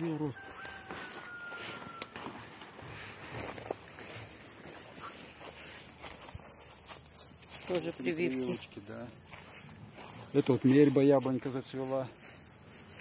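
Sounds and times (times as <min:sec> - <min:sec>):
footsteps in grass: 0:00.0 - 0:13.0.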